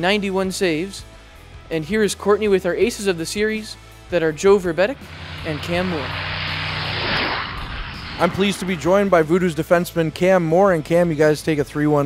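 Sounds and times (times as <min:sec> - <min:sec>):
rushing flyby whoosh: 0:04.4 - 0:10.0.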